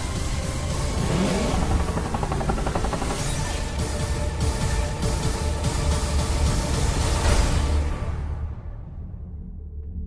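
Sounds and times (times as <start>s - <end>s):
trailer music: 0.0s - 10.0s
engine-like sound effect: 0.6s - 4.0s.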